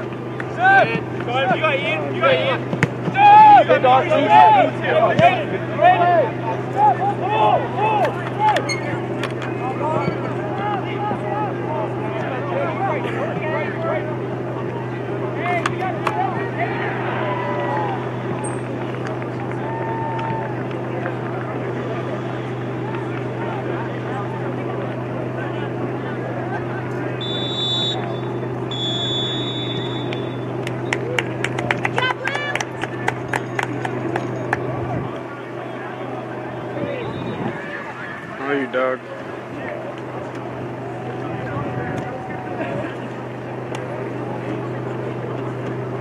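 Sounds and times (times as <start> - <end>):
distant shouting of players: 0.0 - 46.0
steady low hum: 0.0 - 46.0
referee's whistle: 27.2 - 30.6, 36.8 - 37.6.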